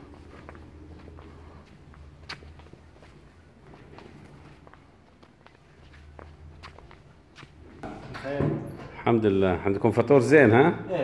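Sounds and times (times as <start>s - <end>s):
footsteps on tiled floor: 0.0s - 8.1s.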